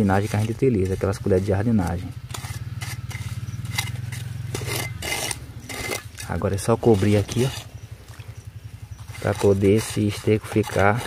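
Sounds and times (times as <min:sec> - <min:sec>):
trowel scraping soil: 0:00.0 - 0:07.8, 0:08.9 - 0:11.0
low motor drone: 0:00.4 - 0:10.8.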